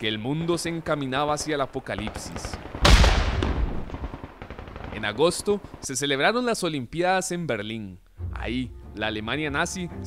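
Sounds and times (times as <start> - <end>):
field gun blast: 0.0 - 6.3.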